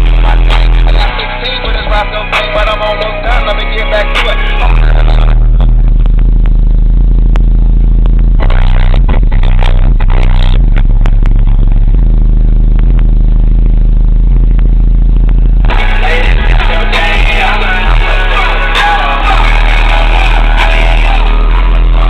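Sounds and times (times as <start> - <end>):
loud deep subwoofer bass: 0.0 - 22.0.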